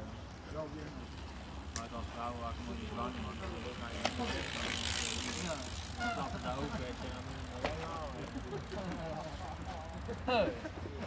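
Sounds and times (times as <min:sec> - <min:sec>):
bike tyres hissing over grass: 0:00.4 - 0:10.7
indistinct talk: 0:00.4 - 0:11.0.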